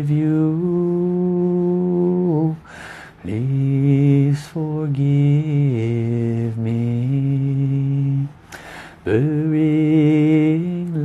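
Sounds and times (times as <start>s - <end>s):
short breath: 2.6s - 3.2s, 8.4s - 9.0s.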